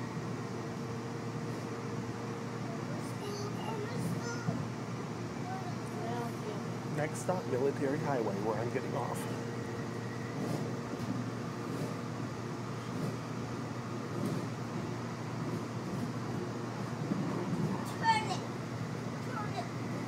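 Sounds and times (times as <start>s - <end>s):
light rail car rumble: 0.0s - 20.0s.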